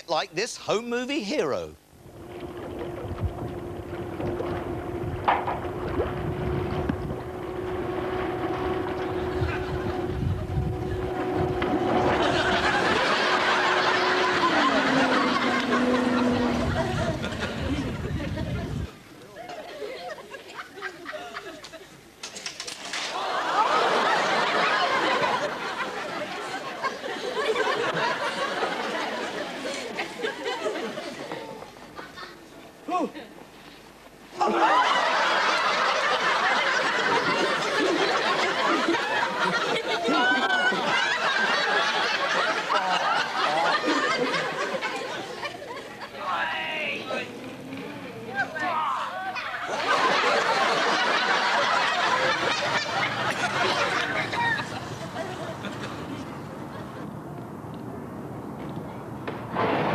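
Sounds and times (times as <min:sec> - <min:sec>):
steady low hum: 0:00.0 - 0:19.2, 0:23.8 - 0:58.5
wind buffeting microphone: 0:02.0 - 0:13.1, 0:15.6 - 0:19.0
audience laughter: 0:02.1 - 0:32.6, 0:34.3 - 0:57.3.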